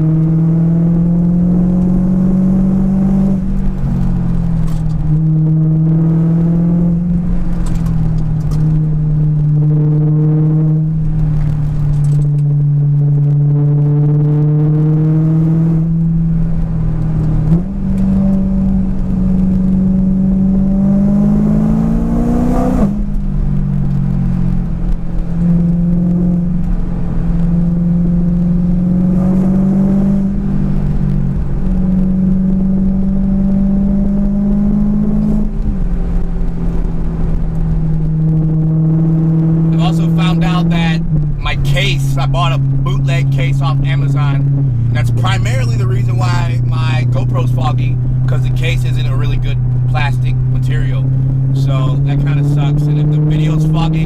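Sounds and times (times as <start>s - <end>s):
car engine from inside cabin: 0.0s - 54.0s
low road rumble: 0.0s - 54.0s.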